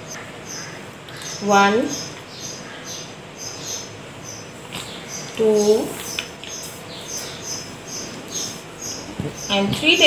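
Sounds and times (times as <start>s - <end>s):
small bird chirping: 0.0s - 10.0s.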